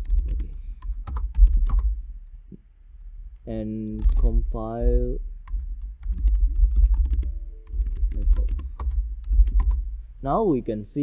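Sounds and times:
computer keyboard typing: 0:00.0 - 0:01.9, 0:04.0 - 0:04.4, 0:05.4 - 0:09.8
steady low rumble: 0:00.0 - 0:11.0.

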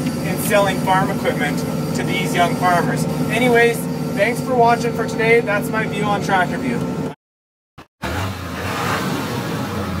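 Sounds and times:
tractor engine running: 0:00.0 - 0:07.2.

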